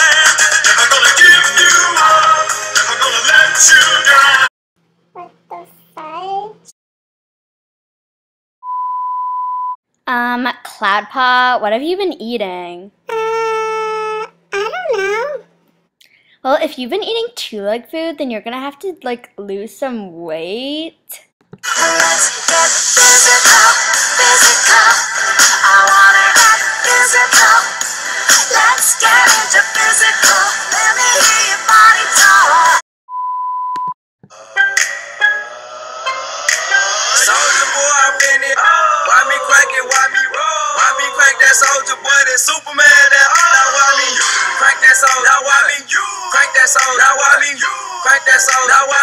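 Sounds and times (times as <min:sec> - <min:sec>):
sung pop music: 0:00.0 - 0:04.5, 0:21.6 - 0:32.8, 0:33.8 - 0:49.0
electronic bleep: 0:08.6 - 0:09.8.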